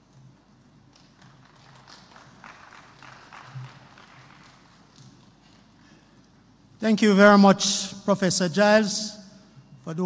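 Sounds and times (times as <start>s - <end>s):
audience applause: 1.1s - 5.0s.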